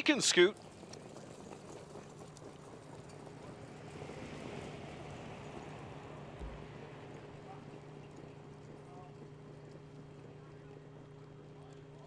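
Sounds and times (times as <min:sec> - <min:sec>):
steady low hum: 0:01.8 - 0:12.0
dull thump: 0:06.4 - 0:06.7.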